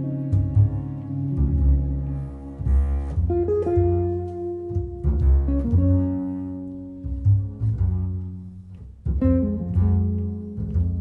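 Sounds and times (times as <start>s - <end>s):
jazz guitar chords: 0.0s - 11.0s
pizzicato double bass: 0.0s - 11.0s.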